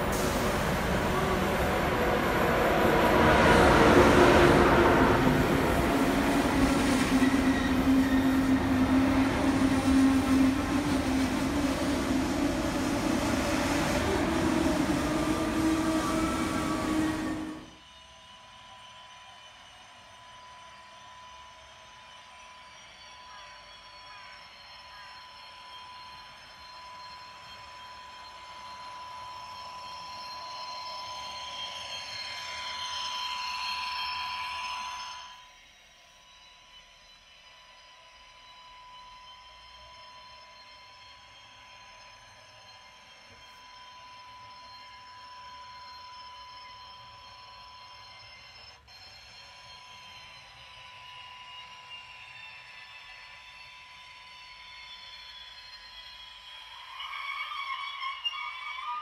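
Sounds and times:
model train motor whine: 0.0 - 59.0
steady high tone: 0.0 - 59.0.

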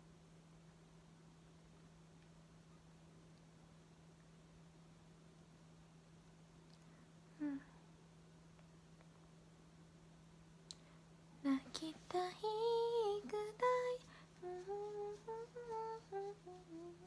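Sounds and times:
faint electrical hum: 0.0 - 17.0
woman humming a tune: 7.3 - 7.8, 11.5 - 17.0.

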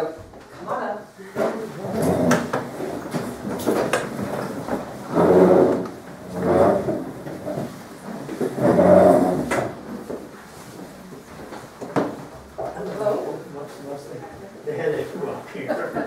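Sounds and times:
furniture scraping: 1.3 - 13.2.

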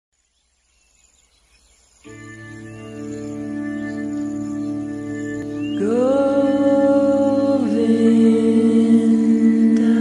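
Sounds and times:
faint chirps: 0.2 - 7.8.

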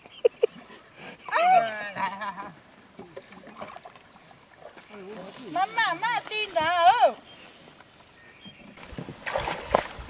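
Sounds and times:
paddle sloshing in muddy water: 0.4 - 10.0.

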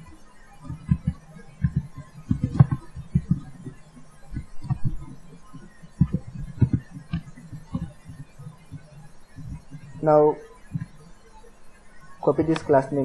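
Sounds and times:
steady low hum: 0.0 - 13.0
muffled keyboard and mouse clicks: 0.6 - 10.0, 12.4 - 12.9.

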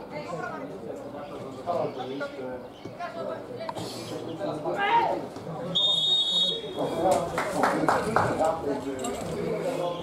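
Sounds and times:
referee's whistle blast: 5.7 - 6.6.

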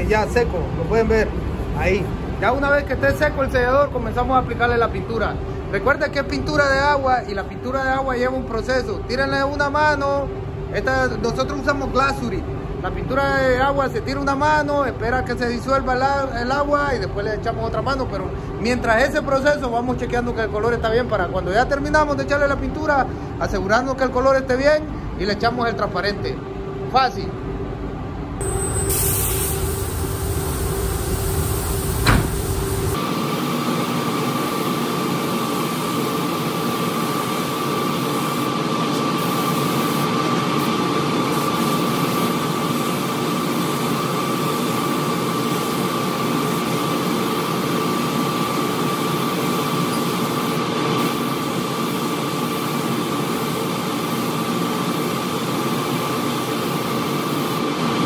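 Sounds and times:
ventilation hum: 0.0 - 58.0
spray gun hissing: 28.4 - 33.0, 34.3 - 57.7
sharp click: 32.0 - 32.4.

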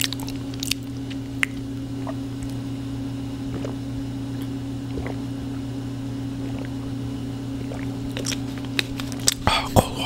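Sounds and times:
laundry machine humming: 0.0 - 10.0.

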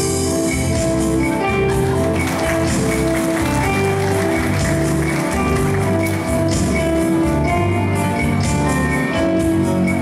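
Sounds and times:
electronic keyboard melody: 0.0 - 10.0.

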